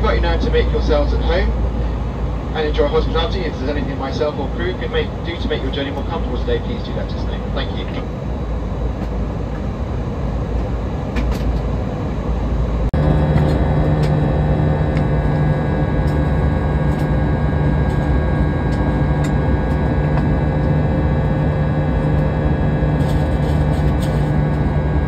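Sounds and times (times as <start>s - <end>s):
airplane engine drone: 0.0s - 25.0s.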